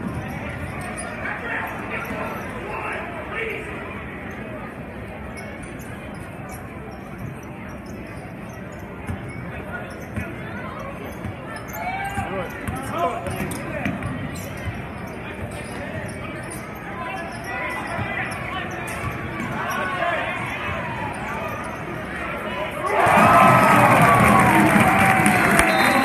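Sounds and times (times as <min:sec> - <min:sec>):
crowd din: 0:18.0 - 0:26.0.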